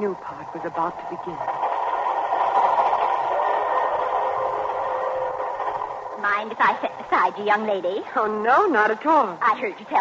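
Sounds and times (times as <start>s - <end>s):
passenger train rushing: 0.0s - 7.8s.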